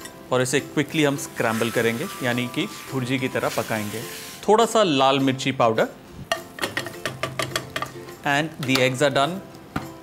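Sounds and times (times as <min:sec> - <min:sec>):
spatula scraping a frying pan: 0:01.4 - 0:04.4.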